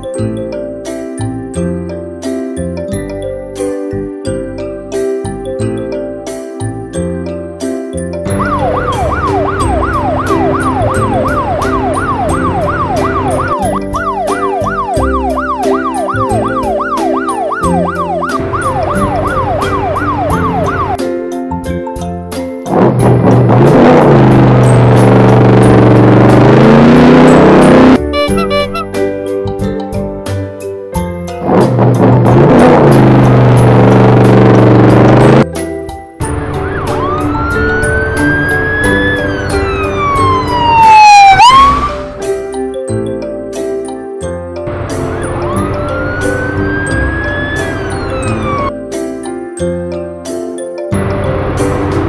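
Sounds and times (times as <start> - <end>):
music: 0.0 - 52.0
cartoon motorcycle engine: 8.3 - 21.0, 22.7 - 28.9, 31.4 - 35.4, 36.3 - 42.2, 44.7 - 48.7.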